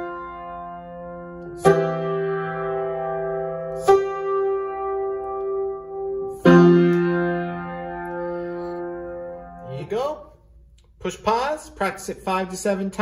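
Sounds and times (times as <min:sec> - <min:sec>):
piano chords: 0:00.0 - 0:10.2.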